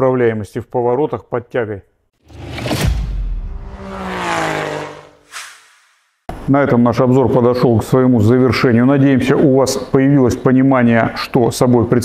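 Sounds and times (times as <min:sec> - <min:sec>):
car engine rev falling: 0:02.3 - 0:05.3
short whoosh: 0:02.3 - 0:06.3.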